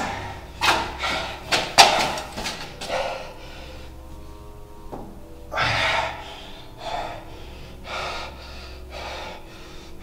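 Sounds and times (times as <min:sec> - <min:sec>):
man breathing hard: 0:00.0 - 0:01.8, 0:02.6 - 0:04.4, 0:05.5 - 0:10.0.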